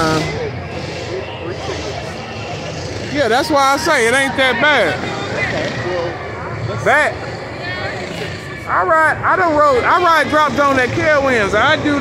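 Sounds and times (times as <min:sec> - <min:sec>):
faint indistinct chatter: 0:00.0 - 0:12.0
fairground background din: 0:00.0 - 0:12.0.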